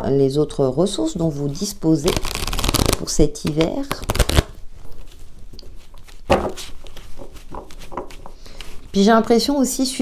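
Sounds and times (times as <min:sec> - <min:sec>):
cards being shuffled: 0:02.0 - 0:08.9.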